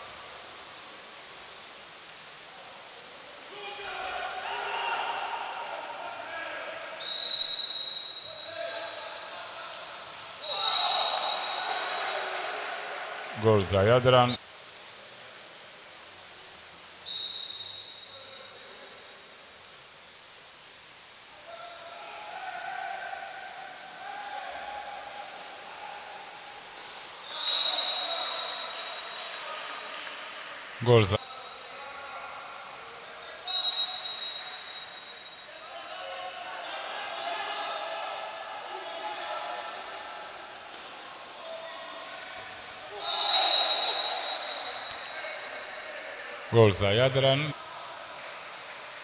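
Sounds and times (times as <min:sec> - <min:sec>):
people shouting: 0:03.6 - 0:06.6
referee's whistle blast: 0:07.0 - 0:09.1, 0:10.4 - 0:12.6, 0:17.1 - 0:18.6, 0:27.2 - 0:29.5, 0:33.5 - 0:35.5, 0:42.9 - 0:45.4.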